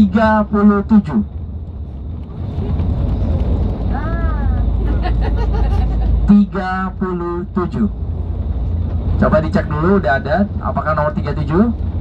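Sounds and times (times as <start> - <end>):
faint passenger voices: 0.0 - 8.1
bus engine and road rumble: 0.0 - 12.0.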